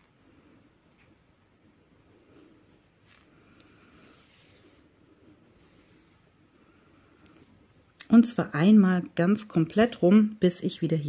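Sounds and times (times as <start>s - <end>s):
needle drawn through knitted fabric: 0.0s - 7.9s.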